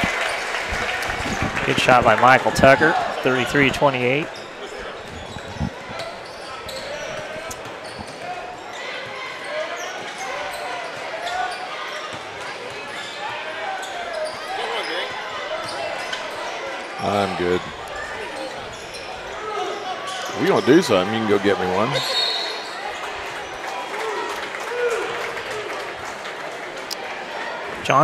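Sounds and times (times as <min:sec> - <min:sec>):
crowd chatter: 0:00.0 - 0:28.0.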